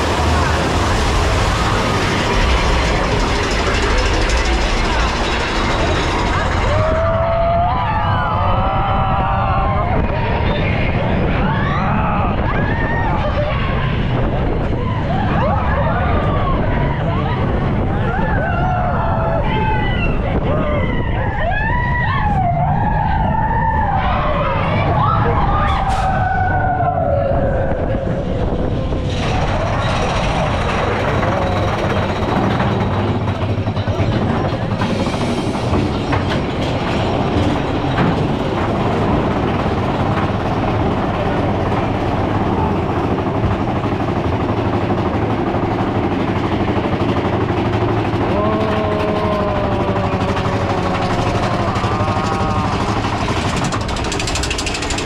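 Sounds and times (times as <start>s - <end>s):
roller coaster rattling rumble: 0.0s - 55.0s
riders yelling and screaming: 5.4s - 55.0s.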